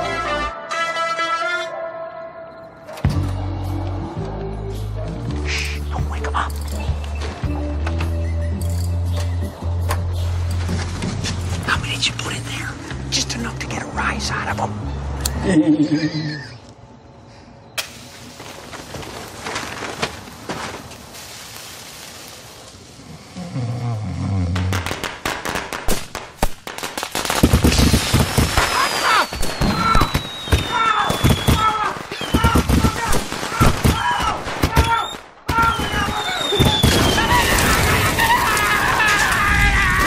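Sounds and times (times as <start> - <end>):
fireworks popping and crackling: 24.6 - 40.0
loud firework blast: 27.3 - 38.2
whistling rockets: 27.4 - 39.8.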